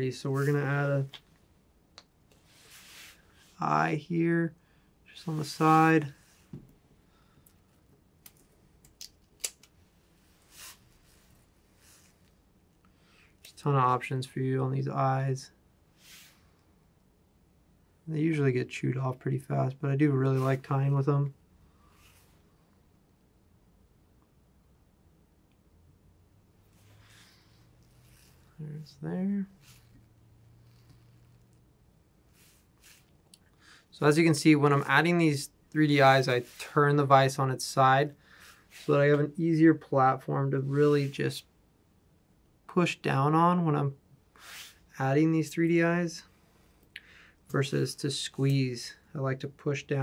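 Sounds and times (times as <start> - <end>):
soft rustle: 0.0 - 1.6, 2.3 - 3.7, 9.6 - 13.6, 21.6 - 22.9, 26.6 - 39.4.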